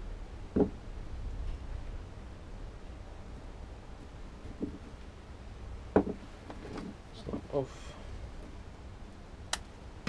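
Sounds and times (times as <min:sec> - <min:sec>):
objects set down on workbench: 0:06.0 - 0:06.9.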